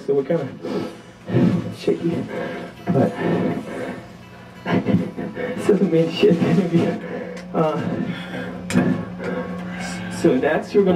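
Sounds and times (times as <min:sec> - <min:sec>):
man speaking over a pa: 0:00.0 - 0:03.6, 0:04.7 - 0:08.1, 0:09.8 - 0:10.9
sustained amplified instrument tone: 0:00.0 - 0:10.9
man laughing: 0:02.8 - 0:03.8, 0:04.7 - 0:10.4.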